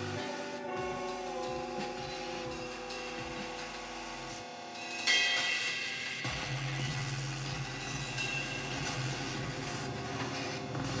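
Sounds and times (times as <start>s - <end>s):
cymbal-like crash: 0.0s - 10.3s.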